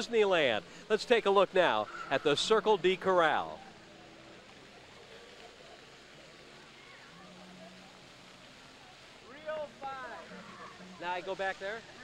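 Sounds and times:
faint distant voices: 0.0s - 12.0s
fountain water jets splashing: 0.0s - 12.0s.

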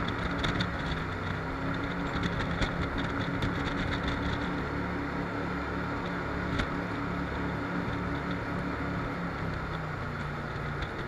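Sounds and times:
boat engine drone: 0.0s - 11.0s.

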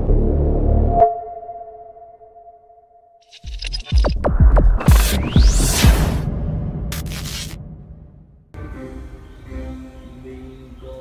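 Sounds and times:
electronic sounds building: 3.2s - 8.2s
pulsing bass beat: 3.8s - 7.2s
sharp hit: 4.8s - 8.3s.

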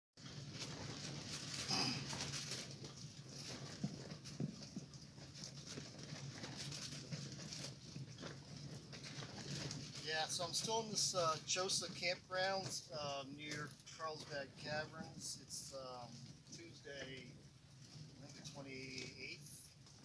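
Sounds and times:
canvas flapping and rattling: 0.2s - 20.0s.

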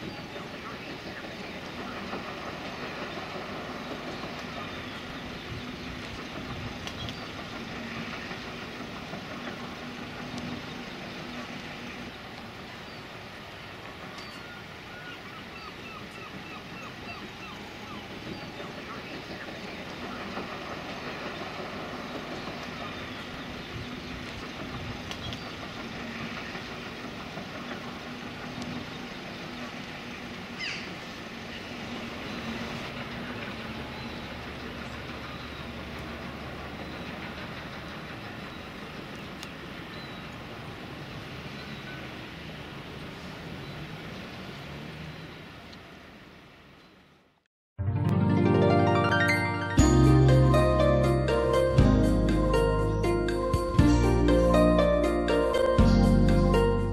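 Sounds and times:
background noise wash: 0.0s - 47.4s.

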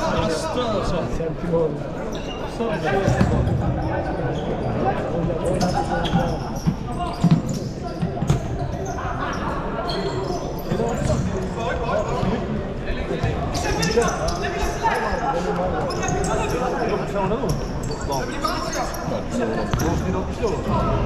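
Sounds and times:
chatter of people: 0.0s - 21.0s
ball thuds in echoing hall: 3.0s - 3.9s, 5.2s - 8.9s, 19.7s - 21.0s.

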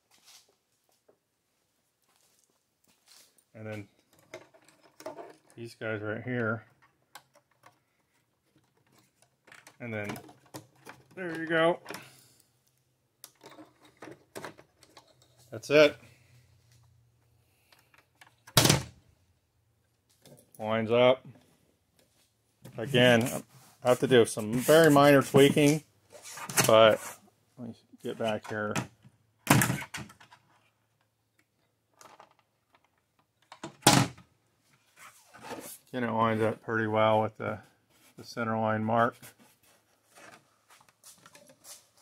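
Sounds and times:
rubbing shuffling handling noise: 21.4s - 27.3s, 34.6s - 36.6s, 39.2s - 42.0s.

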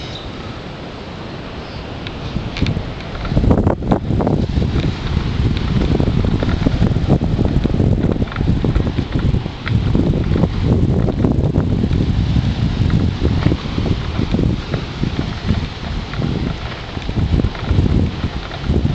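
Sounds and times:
wind buffeting microphone: 0.0s - 18.9s.

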